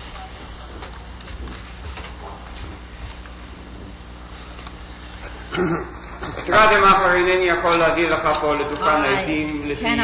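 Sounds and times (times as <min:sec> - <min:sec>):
recording hum and hiss: 0:00.0 - 0:10.0
short laugh: 0:05.4 - 0:06.0.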